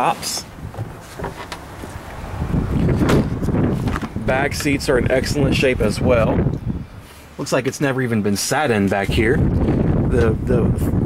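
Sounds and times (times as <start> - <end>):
wind buffeting microphone: 0.5 - 7.1, 8.7 - 11.0.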